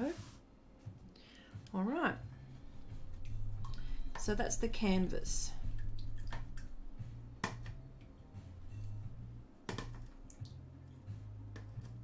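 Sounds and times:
low hum: 2.2s - 11.4s.

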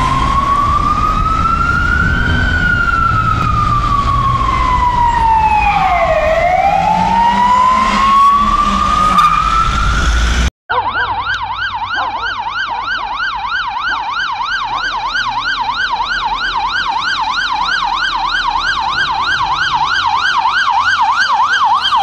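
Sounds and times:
siren fast yelp: 0.0s - 22.0s
siren slow wail: 0.0s - 22.0s.

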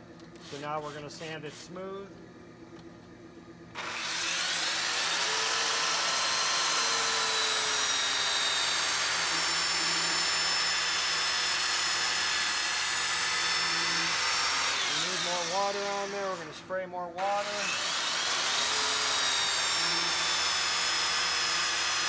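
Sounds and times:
electric belt sander running: 3.7s - 16.6s, 17.2s - 22.0s.

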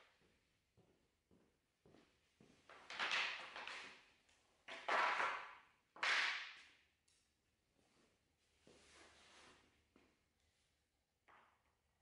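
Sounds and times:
strip clattering on concrete floor: 2.7s - 7.4s.

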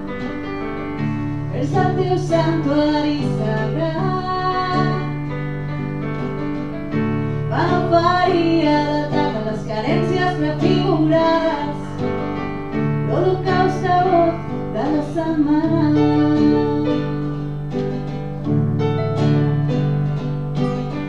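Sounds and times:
acoustic guitar: 0.0s - 21.0s
electric keyboard: 0.0s - 21.0s
woman singing: 1.5s - 5.3s, 7.5s - 12.2s, 13.0s - 17.6s.

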